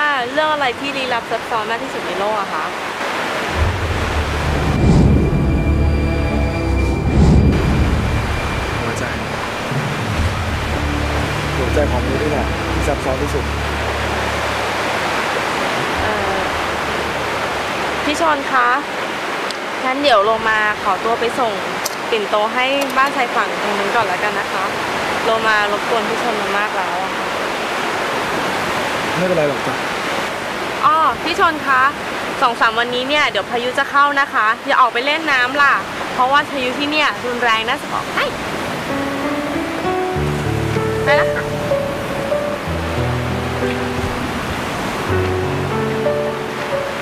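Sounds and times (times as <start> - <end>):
sea surf: 0.0 - 47.0
wind: 0.0 - 47.0
deep rumble: 3.5 - 18.2.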